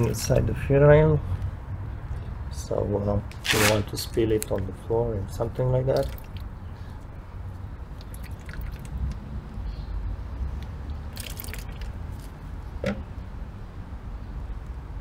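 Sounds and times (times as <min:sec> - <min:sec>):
liquid splashing into plastic tub: 0:06.0 - 0:06.5, 0:08.0 - 0:09.1, 0:11.1 - 0:12.3.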